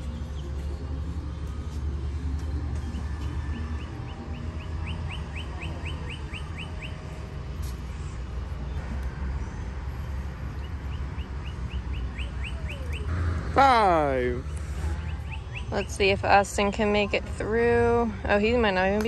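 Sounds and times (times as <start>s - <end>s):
songbird chirping: 0.0s - 17.5s.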